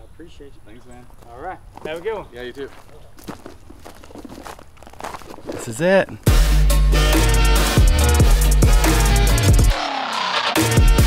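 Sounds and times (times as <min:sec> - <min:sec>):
footsteps on gravel: 0:00.8 - 0:06.4.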